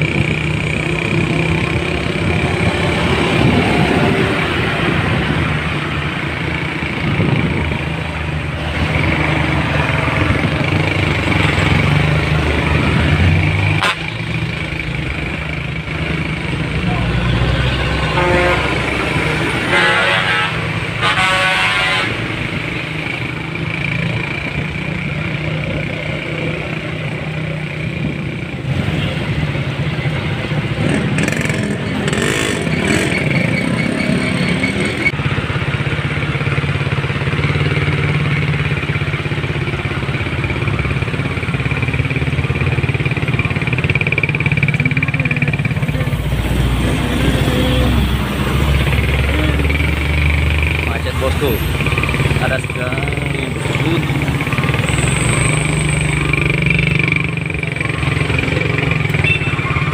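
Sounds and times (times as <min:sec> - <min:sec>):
engine revving: 0:00.0 - 0:24.7, 0:30.5 - 0:35.4, 0:39.6 - 0:59.9
idling traffic engine rumble: 0:00.0 - 0:59.9
car horn blasts: 0:18.0 - 0:18.9, 0:19.6 - 0:22.3, 0:59.1 - 0:59.9.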